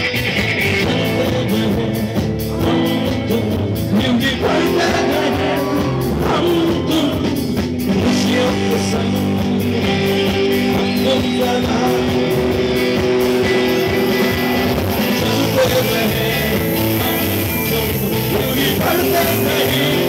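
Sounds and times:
electric guitar chords ringing: 0.0s - 20.0s
live rock band: 0.0s - 20.0s.

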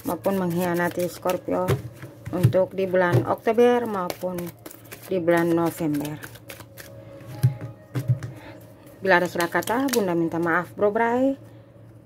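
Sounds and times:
cards being shuffled: 0.0s - 1.4s, 3.8s - 8.1s, 9.2s - 10.1s.

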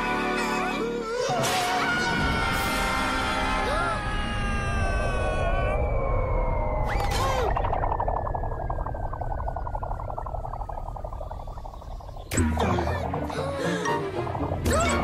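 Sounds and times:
music: 0.0s - 3.7s, 12.3s - 15.0s.

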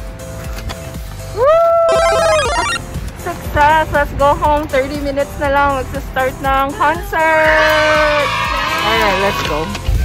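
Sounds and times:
background music: 0.0s - 10.0s
electronic jingle: 1.9s - 2.8s
high chiming notes: 1.9s - 2.8s.

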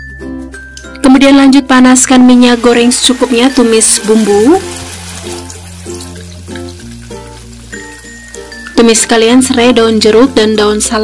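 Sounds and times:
background music of held notes: 0.0s - 11.0s
spice paste sizzling in oil: 1.7s - 11.0s.

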